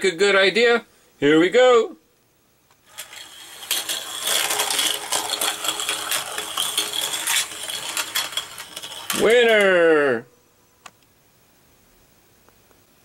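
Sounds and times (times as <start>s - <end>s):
toy cars rattling down plastic track: 2.9s - 9.8s.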